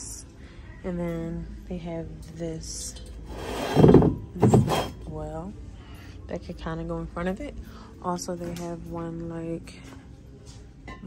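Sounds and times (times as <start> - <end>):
handling noise on microphone: 3.3 - 5.0.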